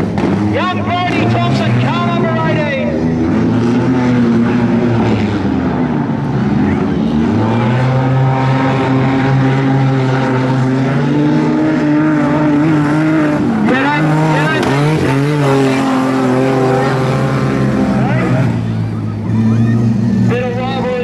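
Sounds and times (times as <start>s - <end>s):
race car engines: 0.0s - 21.0s.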